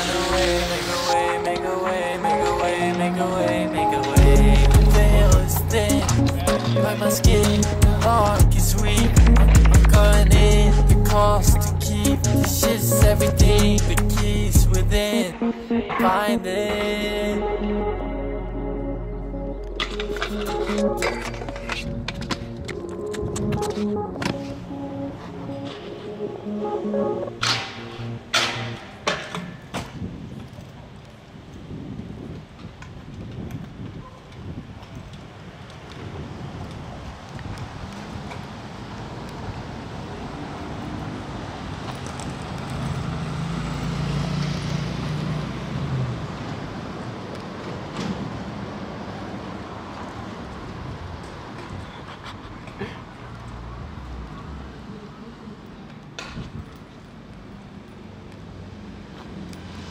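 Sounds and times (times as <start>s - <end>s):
scooter wheels rolling on concrete: 0.0s - 17.2s, 19.5s - 26.0s, 27.4s - 59.9s
music track: 0.0s - 29.0s
low hum: 16.5s - 24.0s.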